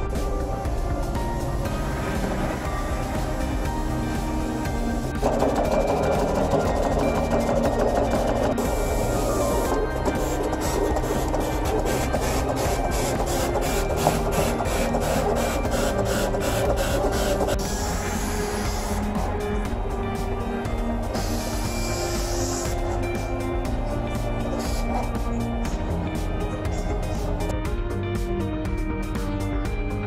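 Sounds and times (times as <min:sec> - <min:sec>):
background music: 0:00.0 - 0:30.0
plotter motor whir: 0:05.2 - 0:19.1.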